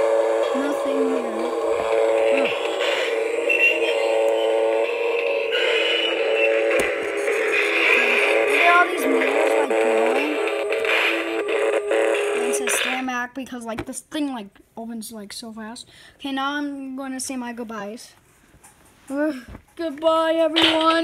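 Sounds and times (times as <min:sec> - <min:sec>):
synthetic drone: 0:00.0 - 0:13.0
wavering voice-like sound: 0:00.0 - 0:13.0.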